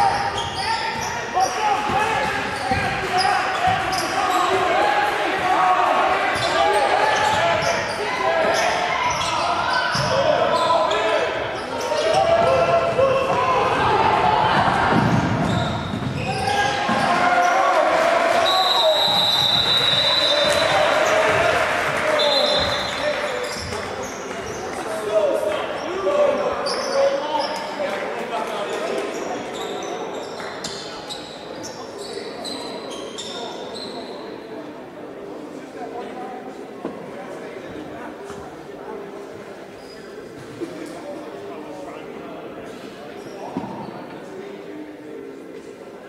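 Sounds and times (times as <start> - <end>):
voices echoing in a gym: 0.0 - 46.0
shrill referee whistle: 18.4 - 20.8, 22.2 - 23.0.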